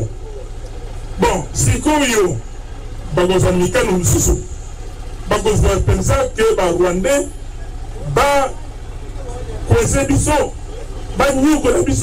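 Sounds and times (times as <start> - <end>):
man speaking into microphone: 1.2 - 2.5, 3.1 - 4.6, 5.3 - 8.7, 9.3 - 12.0.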